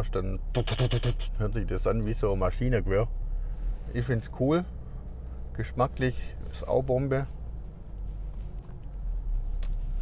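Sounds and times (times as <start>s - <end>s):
car cabin road and engine rumble: 0.0s - 10.0s.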